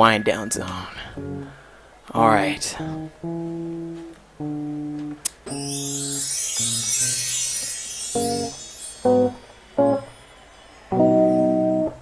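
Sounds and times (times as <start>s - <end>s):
guitar notes and chords: 0.0s - 1.8s, 2.9s - 10.3s
faint high hiss: 0.0s - 12.0s.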